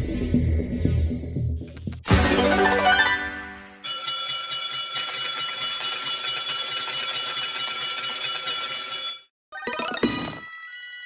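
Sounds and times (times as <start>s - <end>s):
ringing bells jingle: 2.1s - 9.3s, 10.2s - 11.0s.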